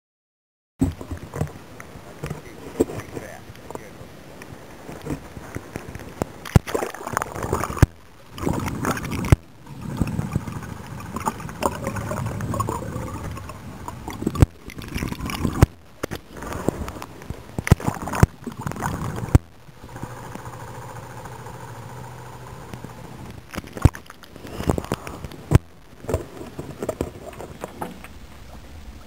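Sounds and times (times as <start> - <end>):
steady low hum: 0.8 - 29.0
water sloshing and gurgling: 0.8 - 29.0.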